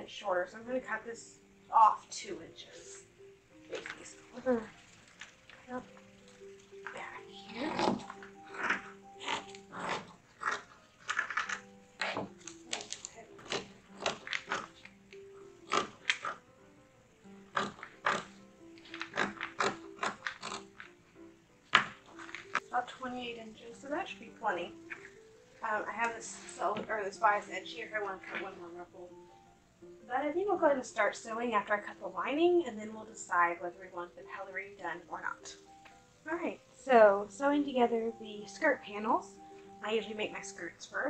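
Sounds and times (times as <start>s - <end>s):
soft background music: 0.0s - 41.0s.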